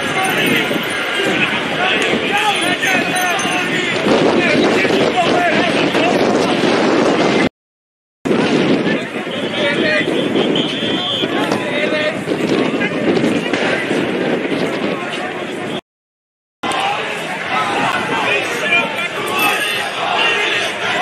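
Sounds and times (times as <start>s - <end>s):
crowd shouting and talking: 0.0s - 7.5s, 8.3s - 15.8s, 16.6s - 21.0s.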